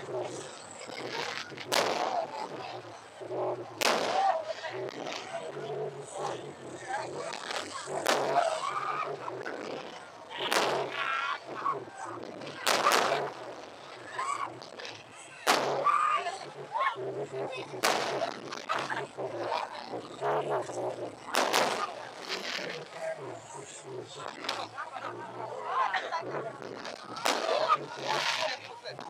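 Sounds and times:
onlookers' voices: 0.0s - 29.0s
firework shells bursting: 21.3s - 22.8s.

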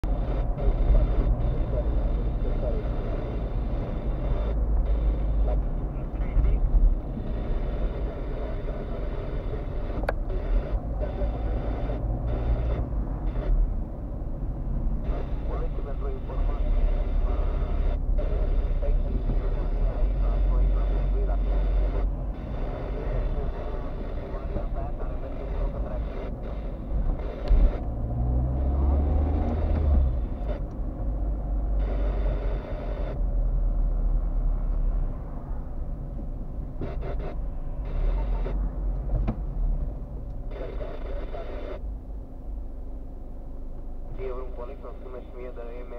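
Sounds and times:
car engine and road rumble: 0.0s - 45.9s.

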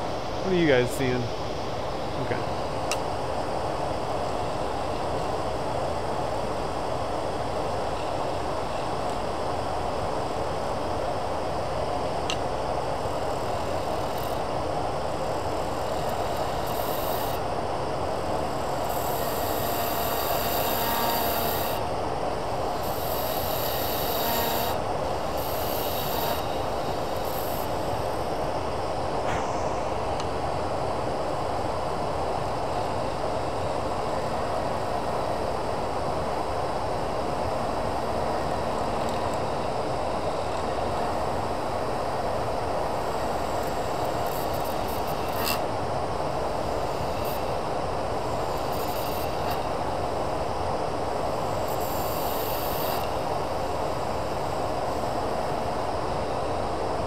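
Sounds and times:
turning tool cutting resin: 15.7s - 17.4s, 18.8s - 21.8s, 22.8s - 27.7s, 43.6s - 45.6s.

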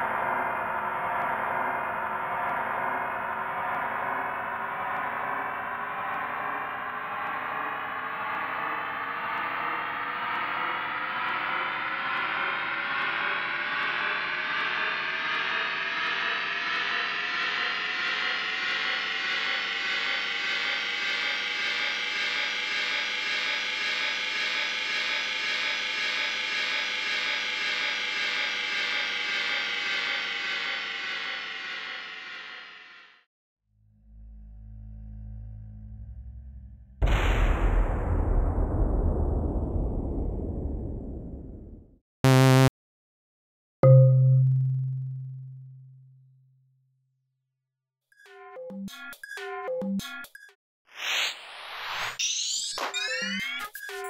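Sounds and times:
dense synthesizer drone: 42.3s - 42.7s, 43.8s - 46.4s.

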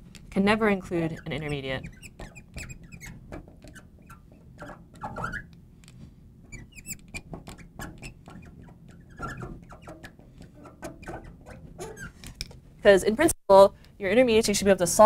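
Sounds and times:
marker pen squeaking on glass: 0.7s - 5.6s, 6.4s - 12.5s.

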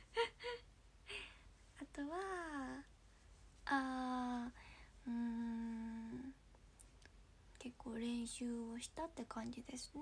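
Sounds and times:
woman humming: 3.7s - 6.4s.

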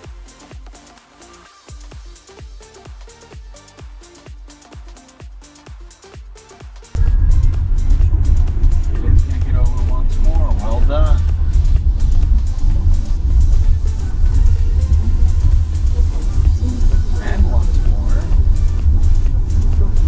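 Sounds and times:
quiet music with a beat: 0.0s - 20.0s
road and tyre rumble inside car: 7.0s - 20.0s.

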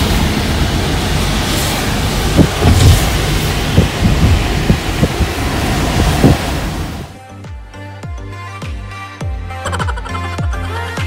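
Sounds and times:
car road noise on wet road: 0.0s - 7.2s
low thumps: 2.2s - 7.1s.

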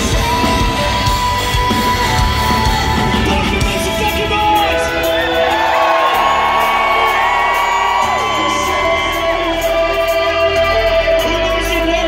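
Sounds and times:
rock band playing live: 0.0s - 12.0s
audience whooping and yelling: 3.8s - 11.5s.

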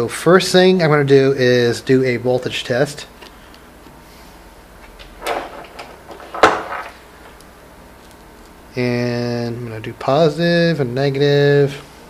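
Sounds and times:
soft rustle of test leads: 4.8s - 8.6s.

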